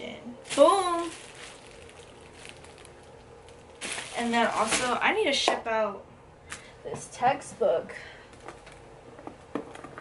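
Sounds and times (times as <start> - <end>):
plastic bag rustling: 0.4 - 5.4.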